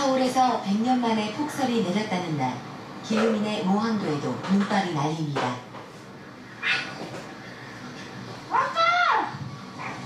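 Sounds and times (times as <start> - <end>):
child shouting: 8.5 - 9.3.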